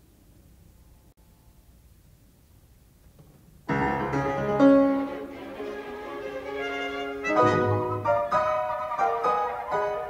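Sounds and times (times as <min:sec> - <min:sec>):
solo piano: 0:03.7 - 0:10.0
symphony orchestra strings: 0:03.9 - 0:10.0.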